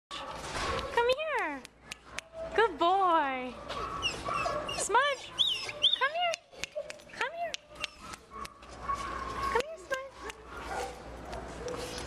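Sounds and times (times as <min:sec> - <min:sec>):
dogs whining and yelping: 0:03.6 - 0:09.6.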